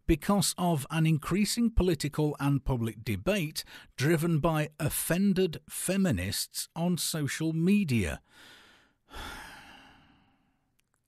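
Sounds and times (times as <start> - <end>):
person sighing: 9.1 - 10.3.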